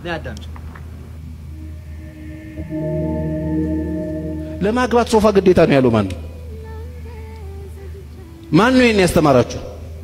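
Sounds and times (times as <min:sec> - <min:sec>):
held chord of background music: 0:01.6 - 0:06.8.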